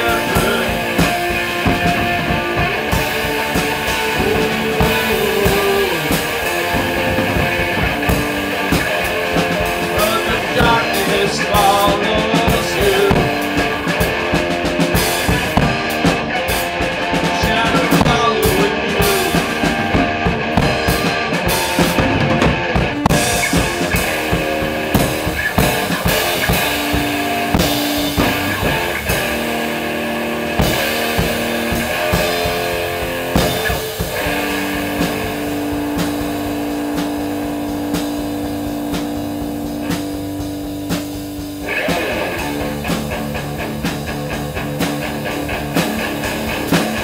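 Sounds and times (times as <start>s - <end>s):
drum kit playing: 0.0s - 47.0s
electric guitar playing: 0.0s - 47.0s.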